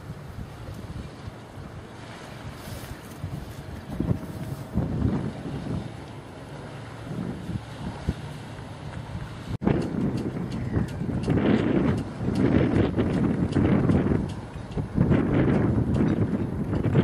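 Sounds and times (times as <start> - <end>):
low steady rumble: 0.0 - 17.0
wind buffeting microphone: 0.0 - 17.0.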